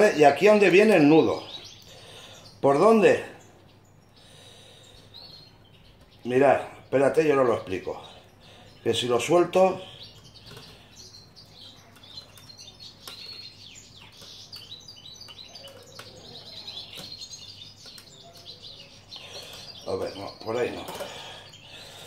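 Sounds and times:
small birds chirping: 0.0s - 22.0s.

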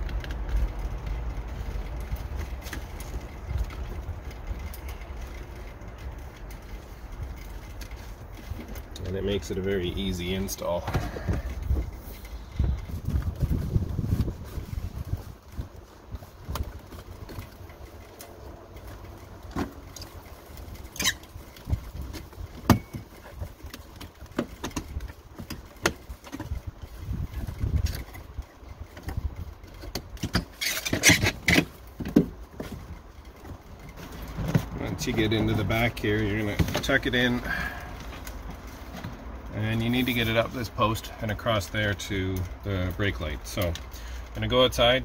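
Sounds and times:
dull low bumps: 0.0s - 44.4s
rustling clatter: 0.0s - 45.0s.

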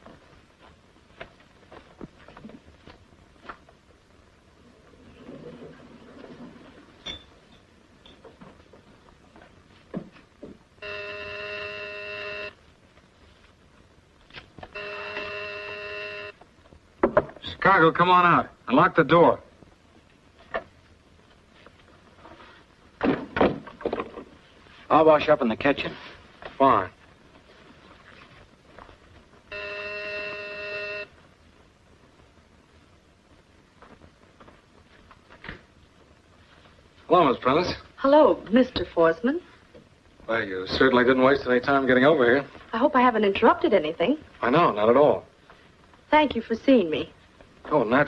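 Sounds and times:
electric doorbell buzzing: 10.8s - 12.5s, 14.8s - 16.3s, 29.5s - 31.1s.

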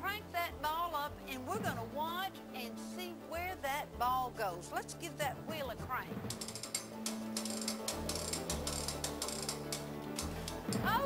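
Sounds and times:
background music: 0.0s - 11.0s
mechanical clicks of hand crank: 6.3s - 11.0s.

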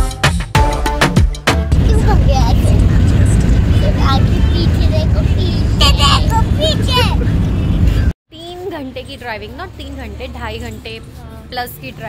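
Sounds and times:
low road rumble inside car: 1.7s - 8.1s.

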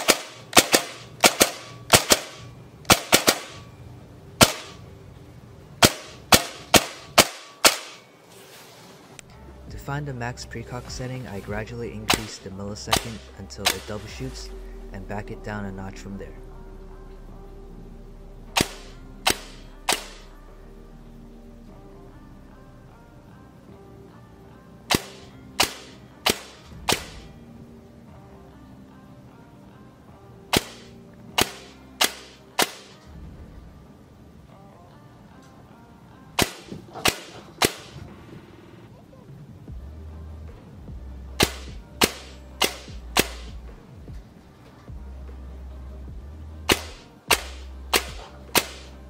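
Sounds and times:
airsoft gun single shots: 0.0s - 3.7s, 4.4s - 4.8s, 5.8s - 8.0s, 12.1s - 14.0s, 18.6s - 20.3s, 24.9s - 27.3s, 30.5s - 33.0s, 36.4s - 38.0s, 41.4s - 43.6s, 46.7s - 48.9s.

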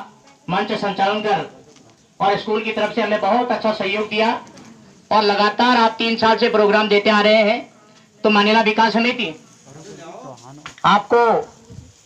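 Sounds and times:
man speaking over loudspeaker: 0.0s - 4.5s, 5.1s - 11.6s
faint crackling hiss: 0.0s - 12.0s.

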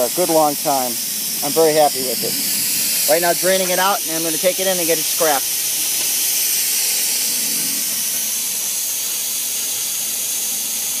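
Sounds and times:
pressure tank draining hiss: 0.0s - 11.0s.

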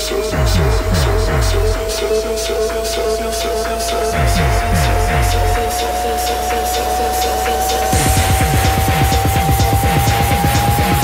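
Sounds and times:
bass drone: 0.0s - 11.0s
high synth note: 0.0s - 11.0s
kick drum: 0.3s - 1.9s, 4.2s - 5.6s, 7.9s - 11.0s.

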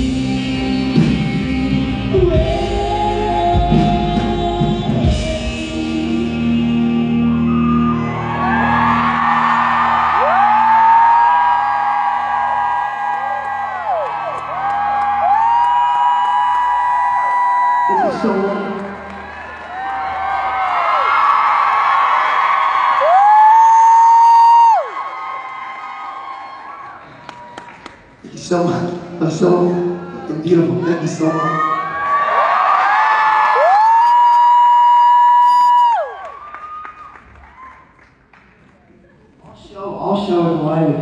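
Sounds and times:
live rock band music: 0.0s - 10.8s
audience cheering and whooping: 6.7s - 28.1s, 31.1s - 38.2s.

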